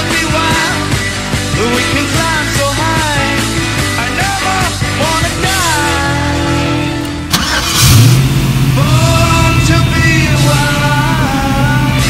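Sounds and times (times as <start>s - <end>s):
ignition click: 7.3s - 8.2s
car engine starting and revving: 7.3s - 12.0s.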